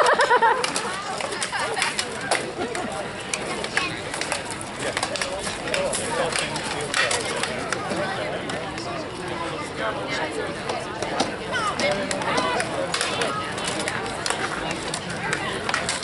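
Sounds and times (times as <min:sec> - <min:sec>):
onlookers talking: 0:00.0 - 0:16.0.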